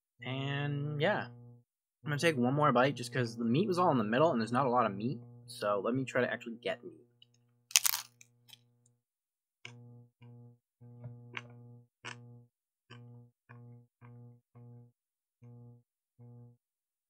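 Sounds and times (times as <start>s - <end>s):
crunch of biting crisp taco shell: 7.7s - 8.2s.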